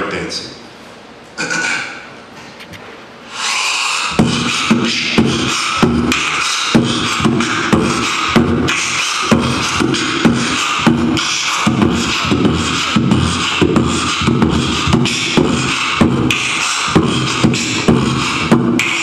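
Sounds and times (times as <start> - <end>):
beatboxing into a microphone: 1.3 - 19.0
hummed bass tone: 6.8 - 18.9.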